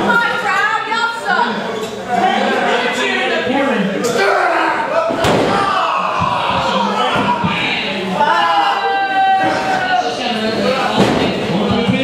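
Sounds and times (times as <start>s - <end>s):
people's voices: 0.0s - 12.0s.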